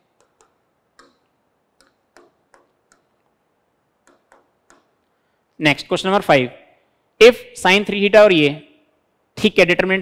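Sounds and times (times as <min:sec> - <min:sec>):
pen tapping on screen: 0:00.0 - 0:03.3, 0:04.0 - 0:05.0.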